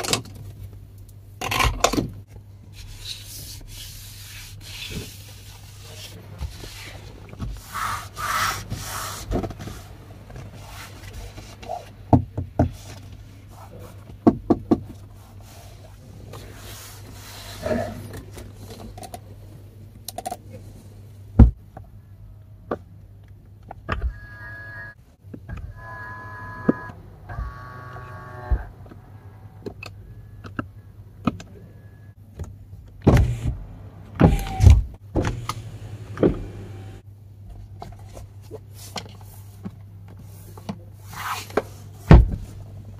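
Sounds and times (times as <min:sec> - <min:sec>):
low steady hum: 0:00.0 - 0:42.9
small electric motor whining: 0:25.7 - 0:28.7.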